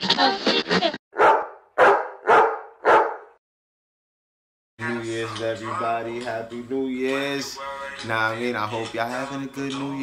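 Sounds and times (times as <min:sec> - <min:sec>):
dog barking: 0:01.2 - 0:03.4.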